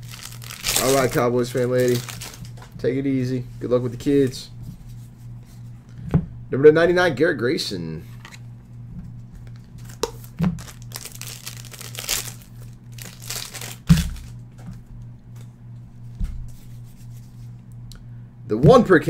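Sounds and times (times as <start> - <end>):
plastic and foil crinkling: 0.0 - 2.8, 9.4 - 14.4
low steady hum: 0.0 - 19.0.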